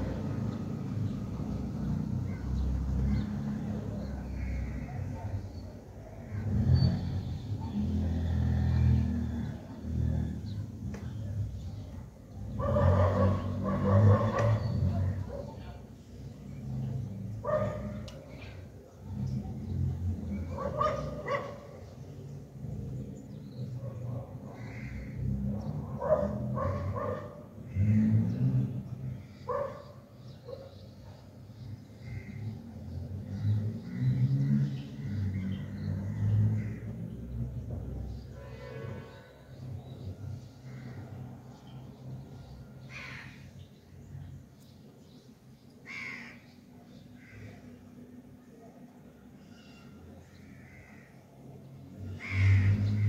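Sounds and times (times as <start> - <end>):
low rumble of traffic: 0.0 - 53.0
dog barking: 12.6 - 15.6, 17.4 - 18.1, 20.5 - 21.8, 25.9 - 27.4, 29.5 - 31.2.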